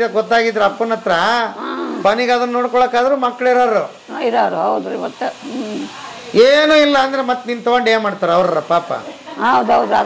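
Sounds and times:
woman talking: 4.1 - 6.2, 9.3 - 10.0.

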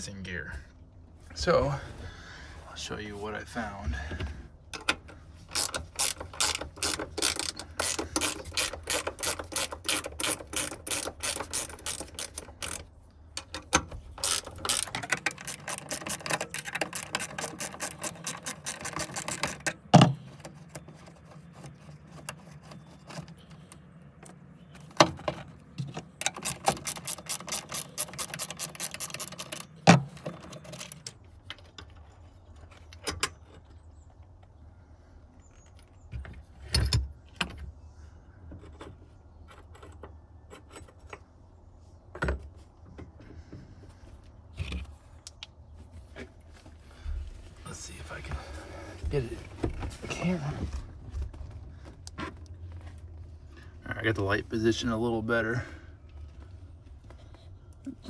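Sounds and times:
ratchet wrench clicking: 5.5 - 12.8, 14.2 - 19.6.

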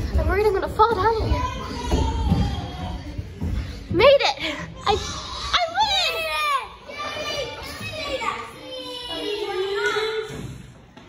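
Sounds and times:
children shouting and squealing: 1.2 - 3.4, 4.8 - 10.6.

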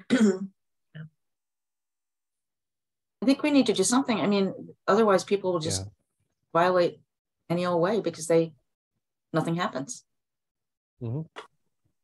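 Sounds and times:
person clearing throat: 0.0 - 0.5.

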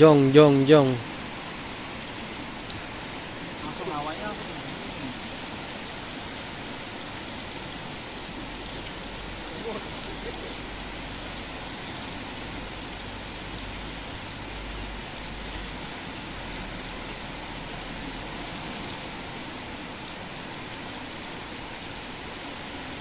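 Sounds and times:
rushing water: 0.0 - 23.0.

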